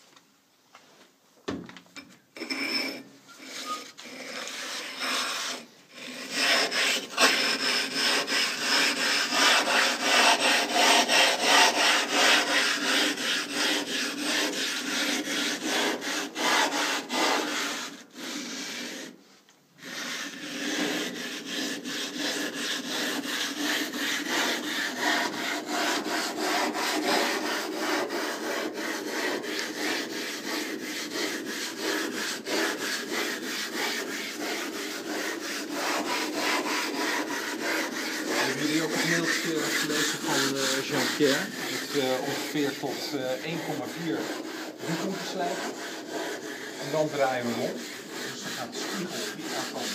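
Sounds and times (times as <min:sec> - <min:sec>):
glass grinding scraping strokes: 0:02.0 - 0:19.1, 0:19.8 - 0:49.9.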